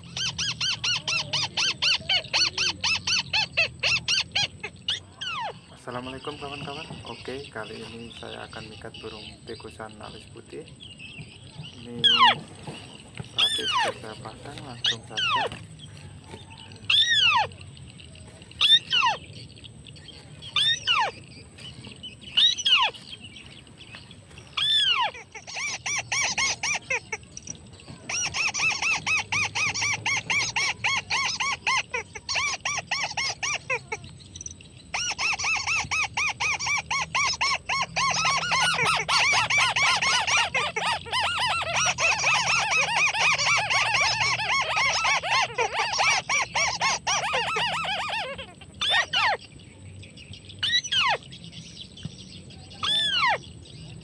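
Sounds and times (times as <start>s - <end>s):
crake calling: 0.0s - 54.0s.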